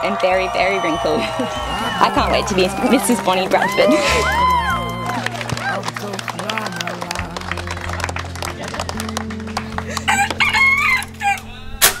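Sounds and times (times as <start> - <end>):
music bed: 0.0 - 12.0
rooster crowing: 10.1 - 11.7.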